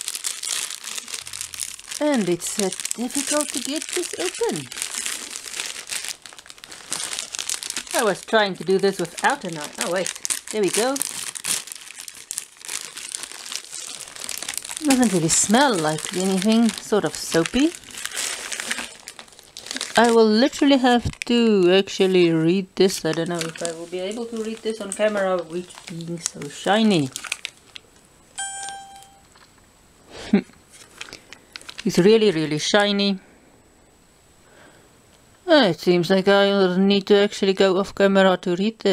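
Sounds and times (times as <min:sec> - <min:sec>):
plastic bag crinkling: 0:00.0 - 0:28.0, 0:30.7 - 0:32.1
steady electronic beep: 0:28.4 - 0:29.3.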